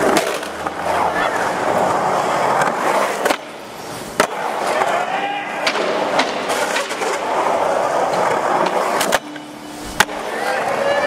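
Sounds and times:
skateboard clacks: 0.0s - 11.0s
skateboard wheels rolling on concrete: 0.0s - 11.0s.

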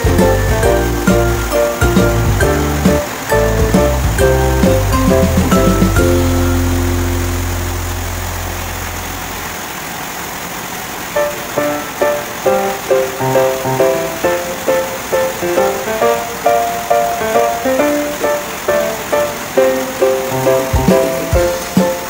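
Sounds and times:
plucked-string melody: 0.0s - 9.0s
held chord: 0.0s - 9.3s.

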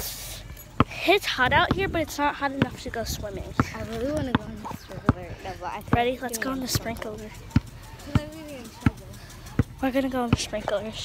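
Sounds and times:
walking footsteps thumping: 0.8s - 11.0s
girl's voice: 0.9s - 7.4s.

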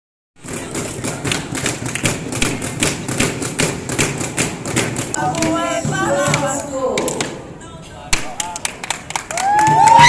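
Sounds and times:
rhythmic percussive beats: 0.4s - 10.0s.

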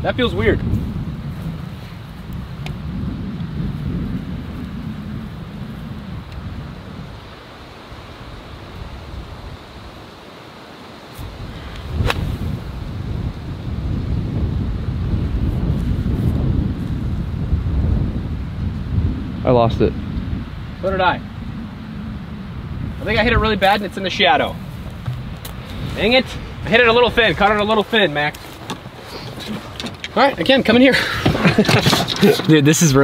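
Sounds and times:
wind rumbling on microphone: 0.0s - 33.0s
golf club striking ball: 12.0s - 12.5s.

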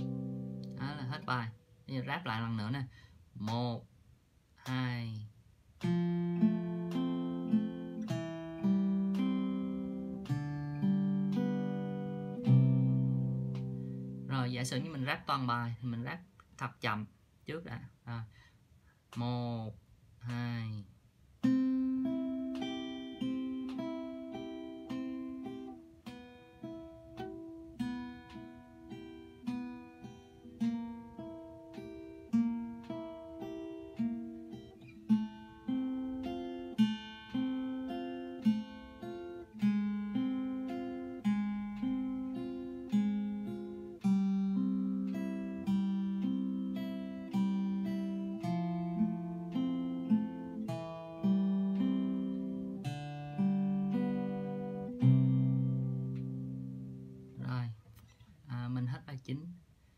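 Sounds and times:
fingerpicked acoustic guitar: 0.0s - 3.8s, 4.6s - 17.0s, 17.8s - 59.9s.

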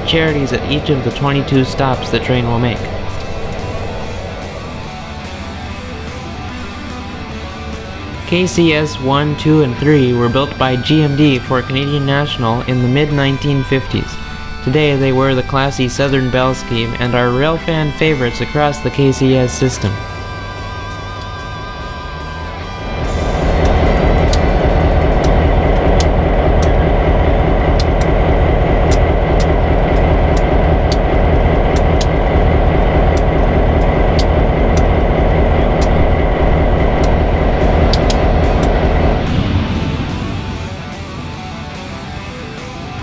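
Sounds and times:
diesel locomotives passing: 0.0s - 43.0s
wheels clicking on rails: 19.7s - 39.4s.

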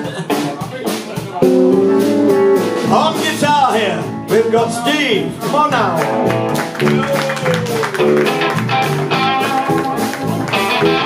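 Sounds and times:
rhythm and blues band playing: 0.0s - 11.0s.

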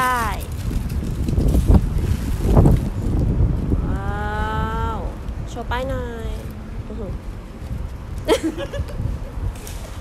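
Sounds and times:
plastic wrap crackling rustle: 0.2s - 3.8s.

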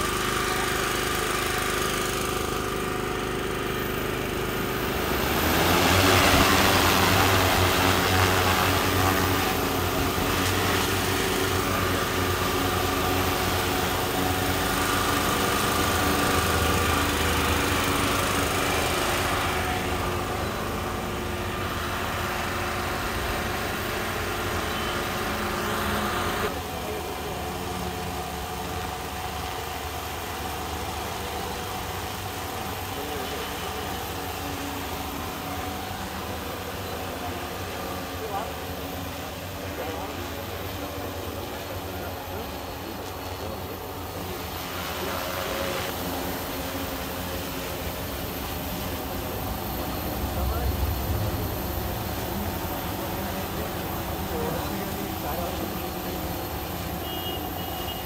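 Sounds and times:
drone motors and propellers humming: 0.0s - 58.0s.

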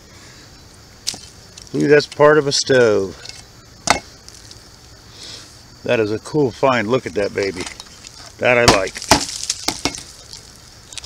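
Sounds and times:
rustling of dry leaves: 0.2s - 11.0s
metal clicks and knocks on log: 7.6s - 10.1s.

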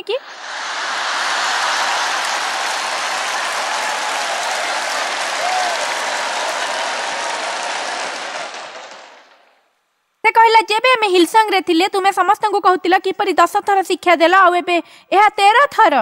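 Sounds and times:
audience applauding: 0.3s - 9.7s.

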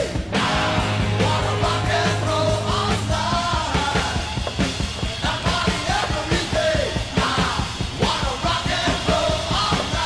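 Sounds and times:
driving drum beat: 0.0s - 10.0s
rock song: 0.0s - 10.0s
yelled sung vocals: 0.0s - 10.0s.

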